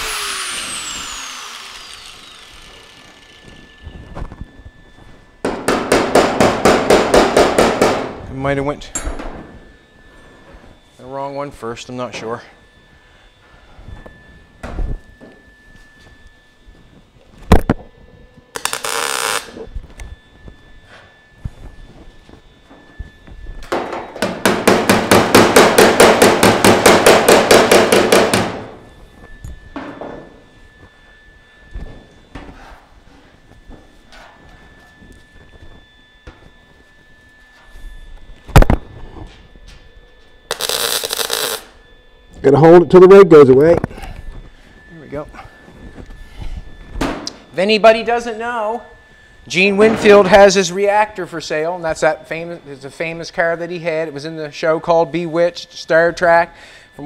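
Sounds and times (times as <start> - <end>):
welder crackling: 0.0 - 3.7, 18.5 - 19.6, 40.5 - 41.8.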